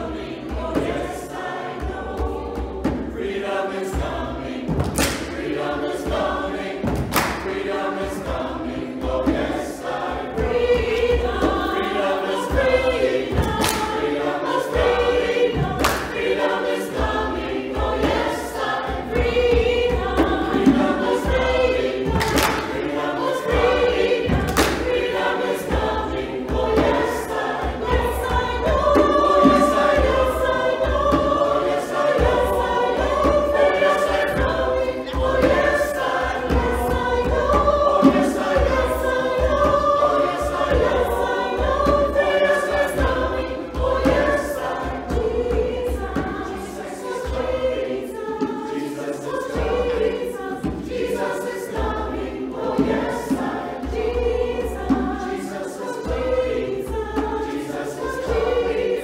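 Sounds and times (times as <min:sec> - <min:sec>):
mixed choir singing gospel: 0:00.0 - 0:59.0.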